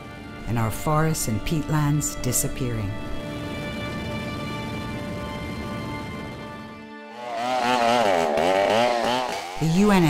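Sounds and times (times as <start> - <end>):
chainsaw cutting wood: 7.1 - 10.0.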